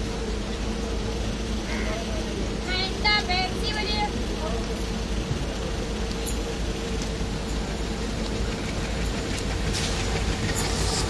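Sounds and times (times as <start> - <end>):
constant hum: 0.0 - 11.0
train running rumble: 0.0 - 11.0.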